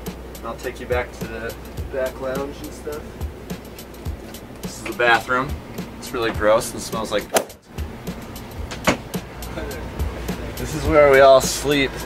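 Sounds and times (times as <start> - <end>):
bus engine rumble: 0.0 - 12.0
sharp click: 7.3 - 7.6.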